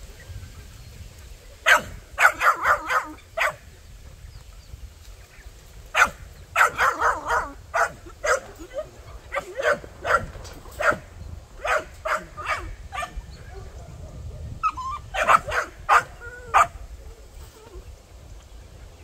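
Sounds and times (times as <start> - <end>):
puppies yipping and barking: 1.6 - 3.7, 6.0 - 18.0
puppy whining: 14.6 - 16.7.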